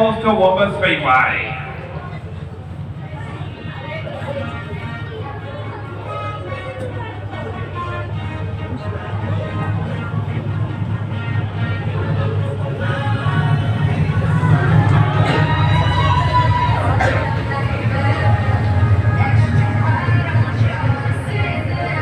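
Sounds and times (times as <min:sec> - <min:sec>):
race car engines droning: 0:00.0 - 0:22.0
music: 0:01.8 - 0:22.0.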